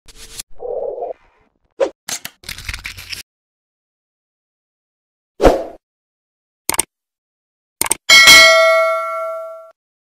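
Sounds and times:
rustling sound effect: 0.1 - 1.6.

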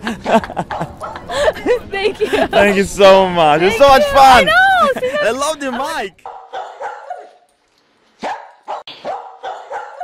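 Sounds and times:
dog barking: 6.2 - 7.4, 8.2 - 10.0.

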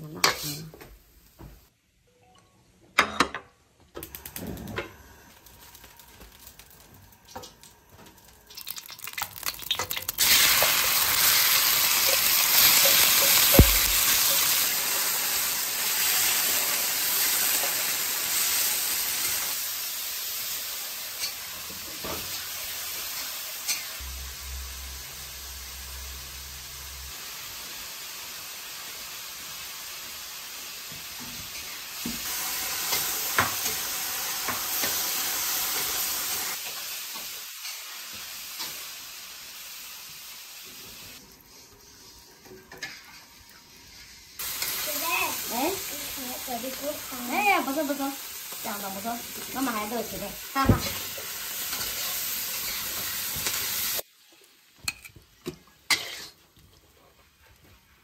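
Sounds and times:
metal spatula in wok: 0.0 - 0.6, 9.6 - 19.6, 20.4 - 27.1, 41.5 - 47.4, 49.4 - 54.0, 55.9 - 56.5
meat sizzling in a wok: 4.1 - 58.0.

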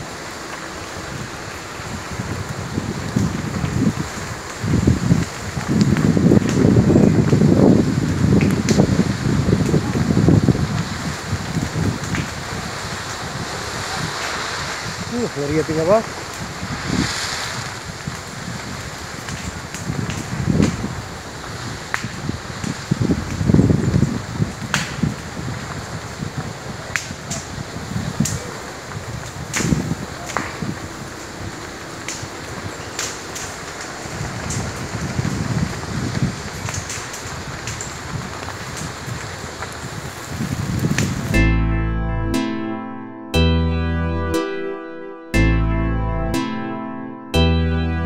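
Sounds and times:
fire crackling and popping: 0.0 - 41.4
wind gusts on microphone: 0.0 - 41.4
plucked-string music: 41.3 - 48.0.

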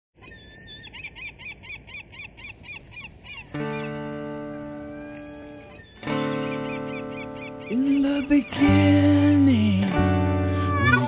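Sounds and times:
bird chirping rapidly: 0.2 - 9.6
faint outdoor hiss: 0.2 - 11.0
acoustic guitar chord ringing: 3.5 - 11.0.

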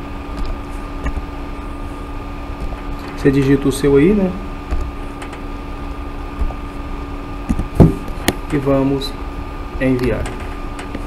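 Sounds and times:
higher whine: 0.0 - 11.0
low hum: 0.0 - 11.0.

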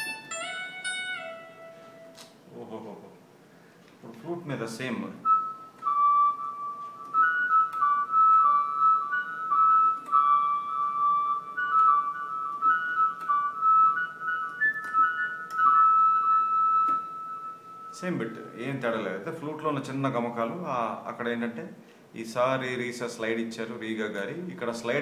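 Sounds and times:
synth flute melody on keyboard: 0.0 - 2.4, 4.9 - 19.2.

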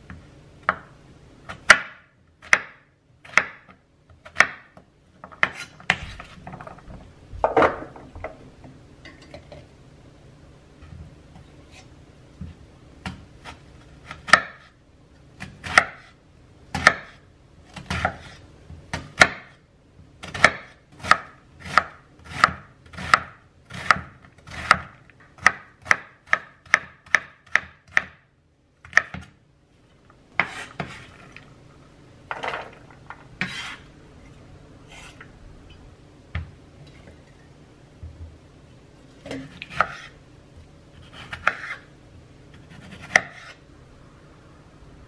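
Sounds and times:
knife chopping onion on wooden board: 0.1 - 6.4, 11.7 - 14.8, 15.4 - 19.6, 20.2 - 28.2, 28.8 - 29.4, 30.4 - 31.1, 33.4 - 33.8, 39.4 - 40.2, 41.0 - 41.9, 42.5 - 43.6
knife scraping onion off board: 5.2 - 6.5, 30.4 - 31.4, 33.4 - 33.9, 34.8 - 35.3, 39.4 - 40.2, 41.0 - 41.9, 42.6 - 43.6.

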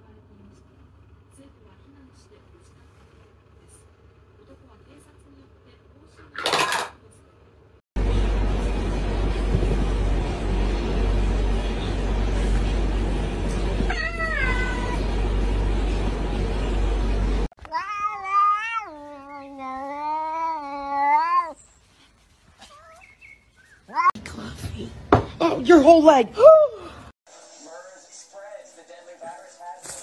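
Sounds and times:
low rumbling noise: 8.0 - 17.5
cat meowing: 13.9 - 15.0, 17.6 - 21.6
cat yowling: 13.9 - 15.0, 17.6 - 21.6.

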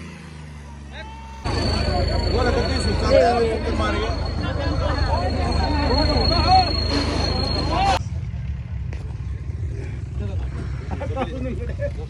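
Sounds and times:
people talking: 0.9 - 8.0, 10.2 - 12.0
tractor engine running: 1.4 - 11.2.

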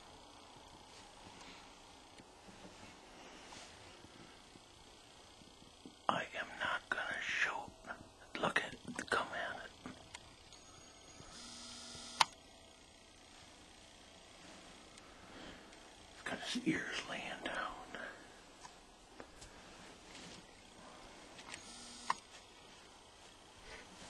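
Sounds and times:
man whispering: 5.8 - 10.0, 16.2 - 18.4
steady whirr: 9.8 - 16.8, 20.7 - 22.3.

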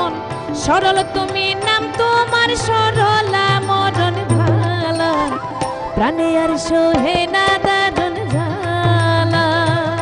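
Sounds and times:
harmonium: 0.0 - 10.0
tabla: 0.0 - 10.0
bamboo flute melody: 4.9 - 7.2.

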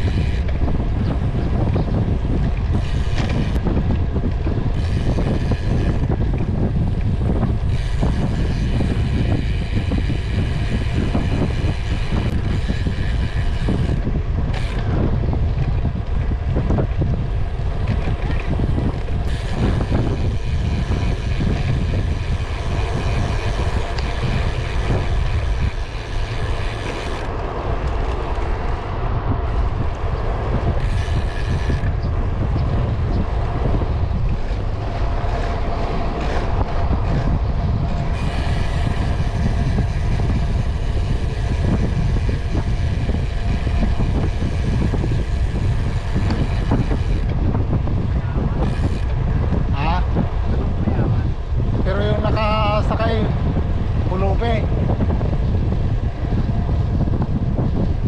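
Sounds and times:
road noise: 0.0 - 58.0
wind rush on microphone: 0.0 - 58.0.

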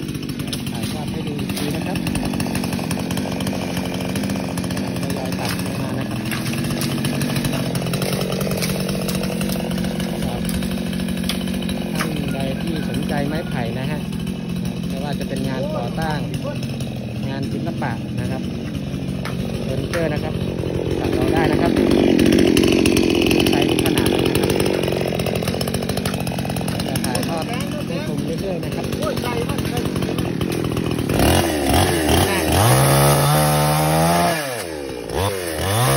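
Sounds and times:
chainsaw engine running: 0.0 - 35.9.

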